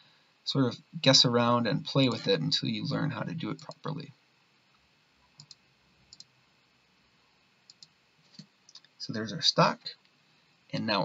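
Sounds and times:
computer mouse clicking: 3.5 - 3.9, 5.3 - 6.3, 7.7 - 8.9.

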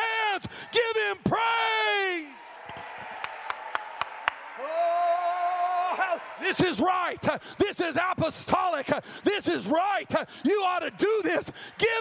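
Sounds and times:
hand clapping: 2.6 - 4.5
man's long held shout: 4.6 - 6.4.

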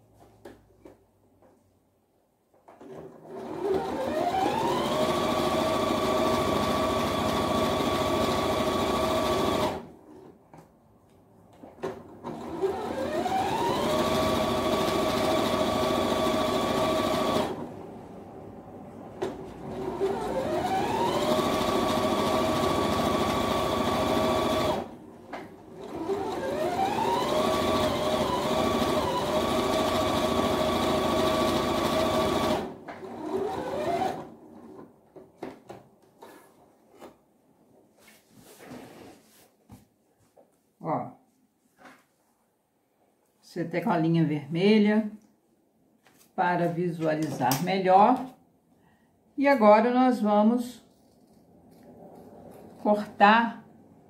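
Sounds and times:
electric sewing machine stitching: 2.8 - 9.9, 12.2 - 17.7, 19.6 - 25.0, 25.7 - 34.4.

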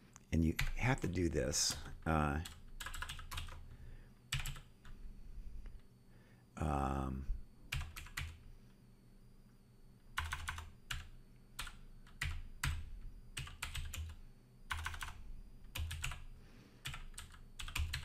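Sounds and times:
computer keyboard typing: 0.6 - 0.9, 1.7 - 3.7, 4.3 - 5.0, 7.7 - 8.4, 10.2 - 18.0.

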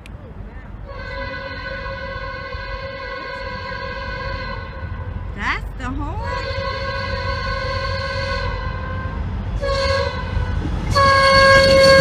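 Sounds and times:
locomotive air horn chord: 0.8 - 5.3, 6.2 - 12.0.

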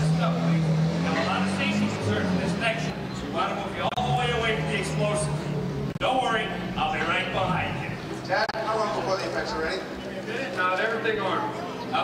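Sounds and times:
vehicle engine running: 0.0 - 11.8.

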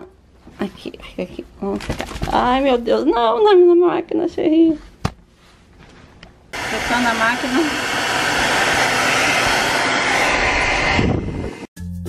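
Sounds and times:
hair dryer blowing air: 6.5 - 11.7.

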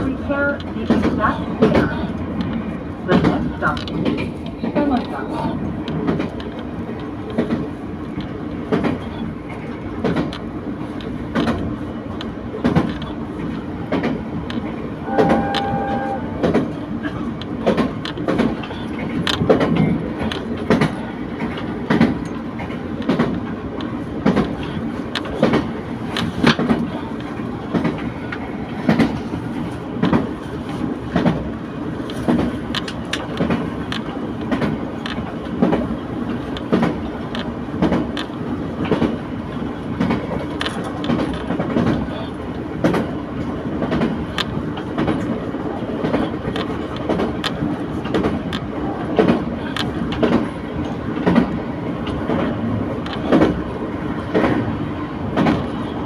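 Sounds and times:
railcar rumble: 0.0 - 56.0
wheels clicking over rail joints: 0.0 - 56.0.

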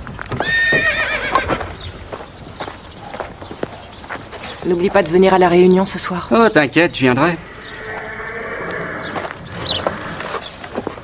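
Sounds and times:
high trembling animal call: 0.5 - 4.4, 7.1 - 10.6.

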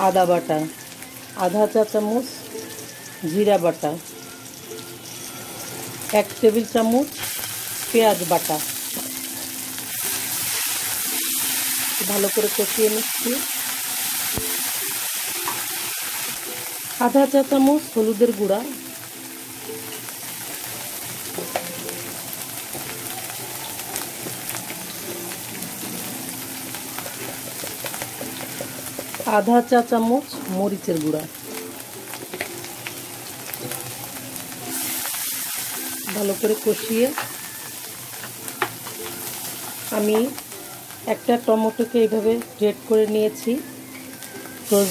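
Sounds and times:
onions sizzling in hot oil: 0.0 - 44.9.

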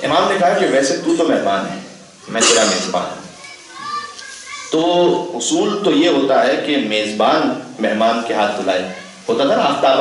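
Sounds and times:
man lecturing: 0.0 - 3.3, 4.7 - 10.0
child's high-pitched voice: 2.2 - 4.8, 8.9 - 9.2.

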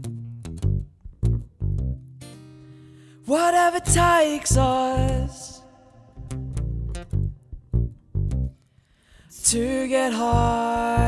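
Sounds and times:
plucked electric bass and guitar: 0.0 - 8.9, 9.5 - 11.0
person singing: 3.2 - 6.3, 9.3 - 11.0.

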